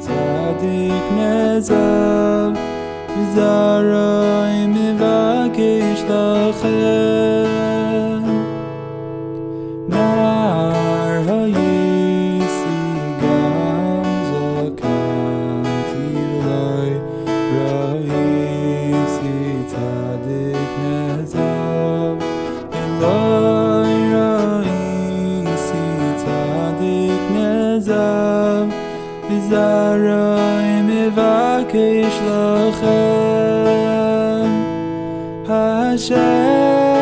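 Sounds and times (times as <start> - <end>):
acoustic guitar strumming: 0.0 - 37.0
man singing: 0.0 - 37.0.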